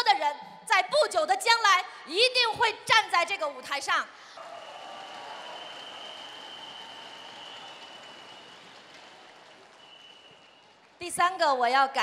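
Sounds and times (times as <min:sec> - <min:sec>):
audience applause: 0:04.4 - 0:11.0.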